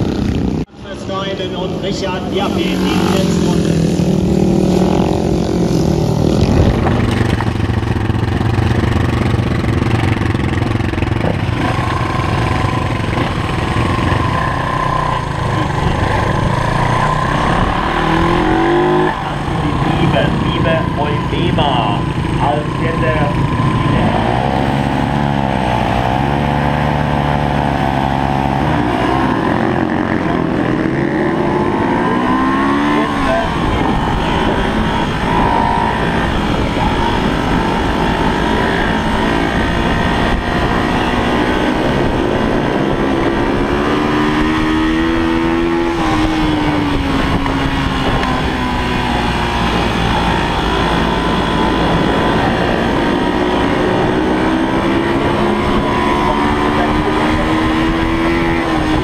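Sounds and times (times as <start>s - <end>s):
motorcycle engine revving close up: 0.0s - 59.0s
racing motorcycles revving: 0.0s - 59.0s.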